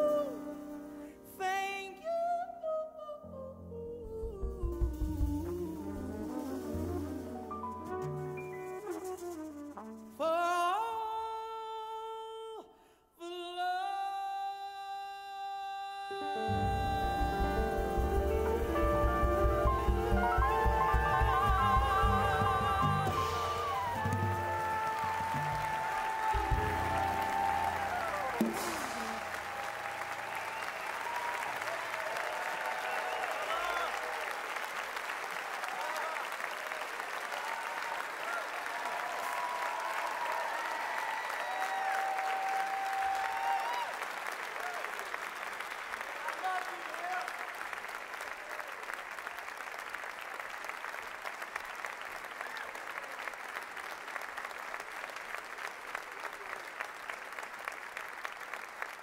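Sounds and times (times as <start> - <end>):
audience applauding: 16.6 - 59.0
audience cheering and calling out: 20.0 - 34.4, 37.4 - 44.9.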